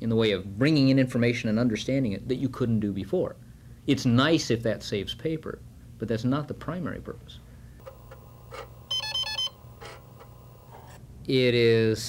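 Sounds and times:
low steady hum: 7.8s - 11.0s
computer beeping electronic notes: 8.3s - 10.7s.

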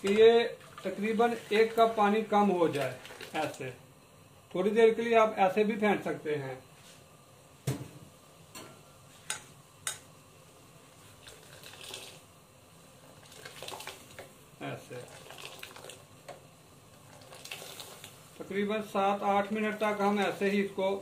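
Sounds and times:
liquid splashing: 2.7s - 3.6s.

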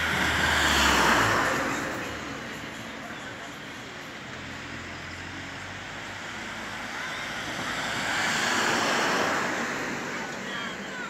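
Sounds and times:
passing vehicle road noise: 0.0s - 11.0s.

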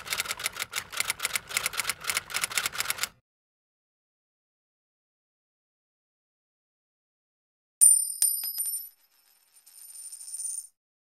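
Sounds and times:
coins jingling: 7.8s - 10.7s.

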